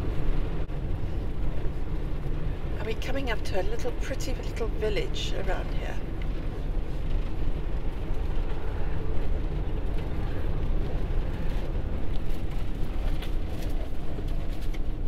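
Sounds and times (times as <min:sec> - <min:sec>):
engine and road rumble: 0:00.0 - 0:15.0.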